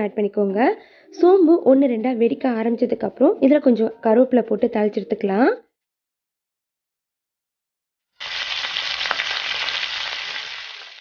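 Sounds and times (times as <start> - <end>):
spices sizzling in hot oil: 8.2 - 11.0.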